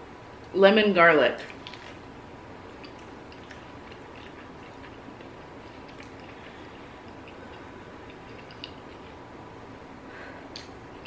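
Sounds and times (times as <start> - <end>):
low room hum: 0.0 - 11.0
person chewing: 1.5 - 2.0, 2.7 - 9.2
wet mouth clicks: 2.8 - 9.0, 10.5 - 10.8.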